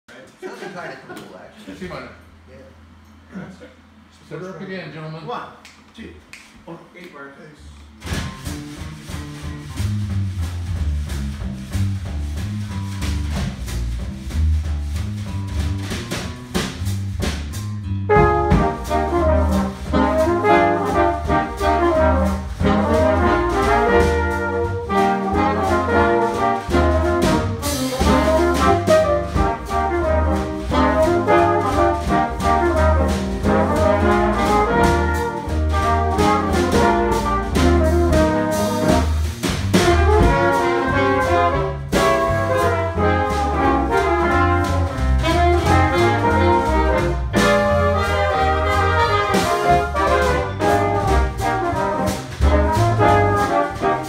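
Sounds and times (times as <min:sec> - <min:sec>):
jazz combo playing: 0:07.9 - 0:54.0.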